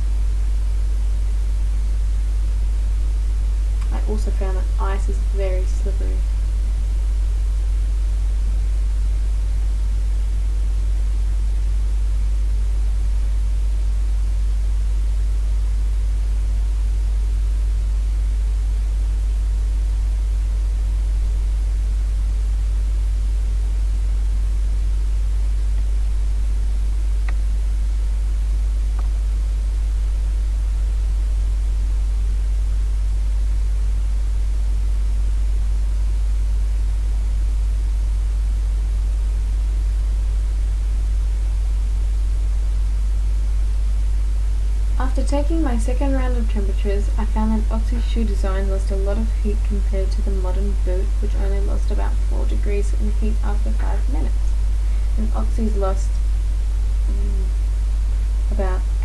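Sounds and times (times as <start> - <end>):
low hum with hiss: 0.0 - 59.0.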